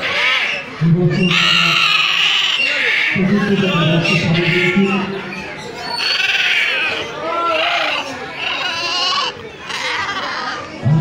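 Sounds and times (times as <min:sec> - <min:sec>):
parrots calling: 0:00.0 - 0:10.8.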